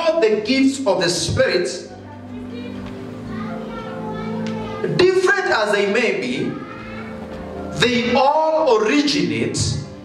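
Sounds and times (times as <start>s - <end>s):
soft background music: 0.0s - 10.0s
faint voices: 1.8s - 8.6s.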